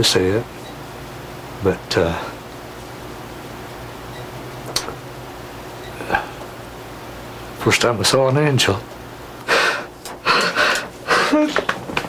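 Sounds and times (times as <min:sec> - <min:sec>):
man gasping breaths: 0:09.5 - 0:11.6
man sobbing: 0:09.5 - 0:11.7.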